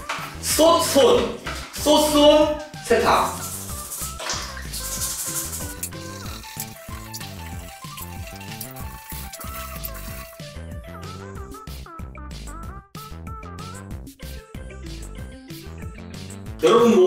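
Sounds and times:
background music with steady beat: 0.0s - 17.0s
toothbrush scrubbing sneaker: 3.2s - 10.6s
water splashing in plastic basin: 3.3s - 10.4s.

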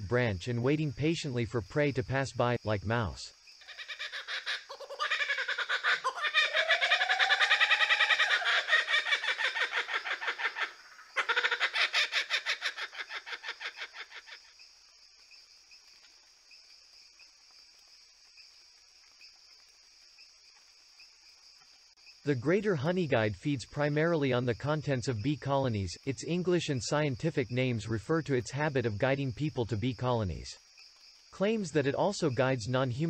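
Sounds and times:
kookaburra laughing: 3.6s - 14.5s.

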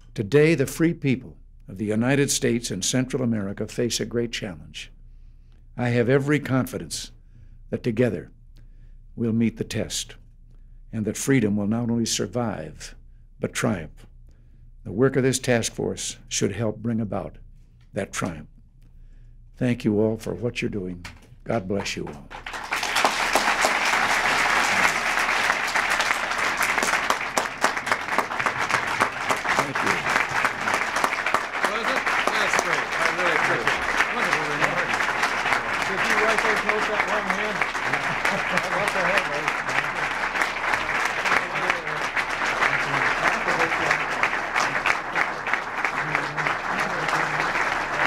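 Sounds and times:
audience applauding: 22.3s - 48.0s.

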